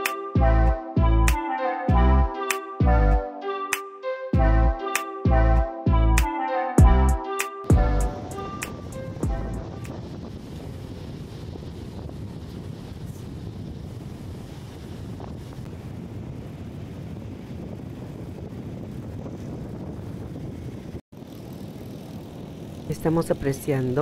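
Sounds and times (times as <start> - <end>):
wind buffeting microphone: 7.7 - 24.0.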